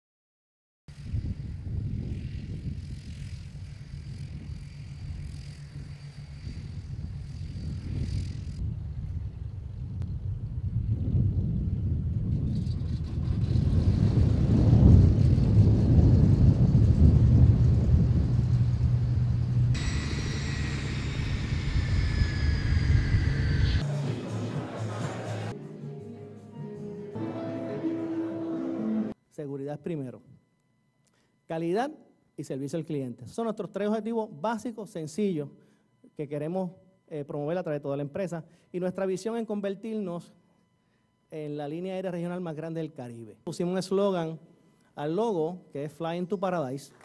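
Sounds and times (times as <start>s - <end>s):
turboprop engine rumbling: 0.9s - 24.5s
high whine falling in pitch: 14.1s - 25.6s.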